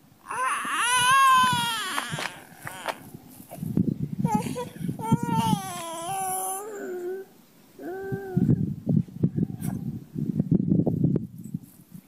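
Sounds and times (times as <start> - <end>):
toddler crying: 0.3 - 3.1, 4.2 - 7.3.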